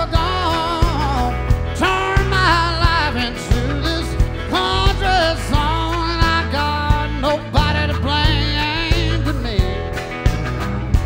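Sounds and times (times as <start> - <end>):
guitar strumming: 0.0 - 11.0.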